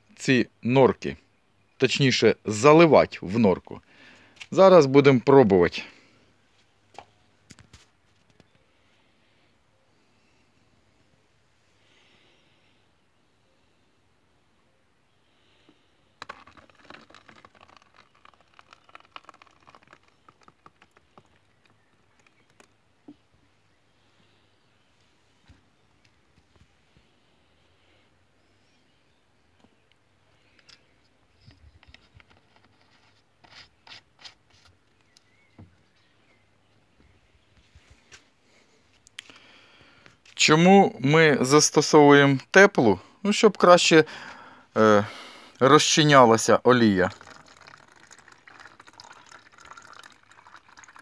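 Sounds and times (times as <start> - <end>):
plastic bottle and tub handling: 16.2 - 23.3, 30.5 - 36.4.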